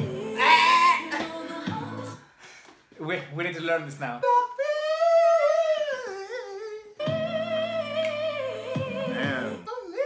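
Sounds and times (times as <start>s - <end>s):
high singing voice: 0.0s - 2.4s, 4.2s - 10.0s.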